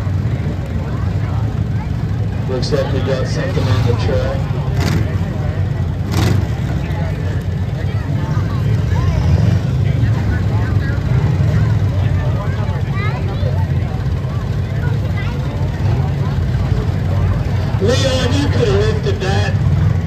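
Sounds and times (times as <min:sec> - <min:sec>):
car engines rumbling: 0:00.0 - 0:20.0.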